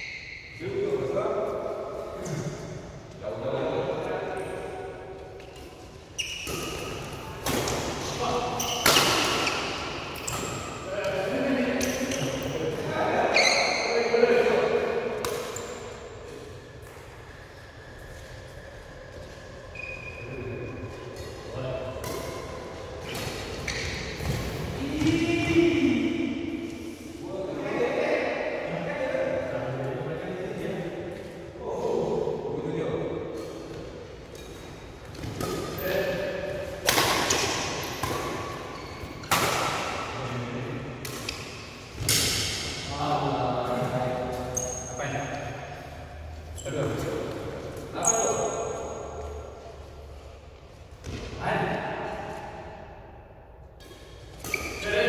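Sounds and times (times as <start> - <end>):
shoes squeaking on court floor: 5.4 - 10.9, 11.8 - 14.1, 15.3 - 25.1, 33.4 - 39.6, 43.7 - 51.2, 53.8 - 55.0
rackets hitting shuttlecock: 6.4 - 12.4, 14.9 - 15.9, 33.6 - 40.2, 41.0 - 42.9.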